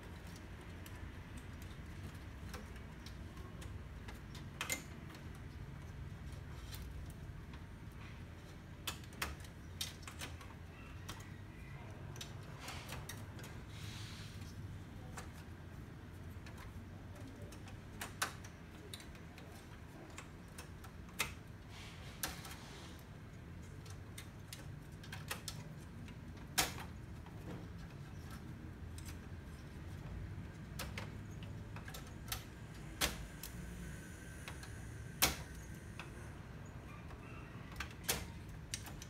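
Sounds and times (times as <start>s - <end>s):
clicks of plastic and metal parts: 0.1s - 5.9s.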